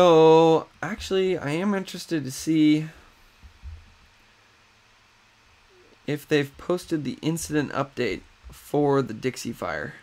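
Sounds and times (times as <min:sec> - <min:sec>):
faint steady hiss: 0:00.0 - 0:10.0
soft low thuds: 0:03.2 - 0:04.2.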